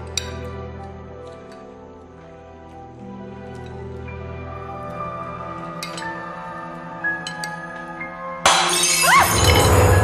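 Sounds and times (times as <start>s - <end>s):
soft background music: 0.0s - 10.0s
glass shattering: 8.4s - 10.0s.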